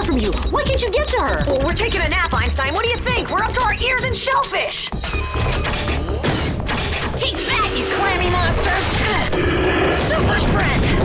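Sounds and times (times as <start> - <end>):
action music: 0.0 - 11.0
mechanical clicking and clattering: 5.0 - 9.3
low rumble: 7.8 - 11.0.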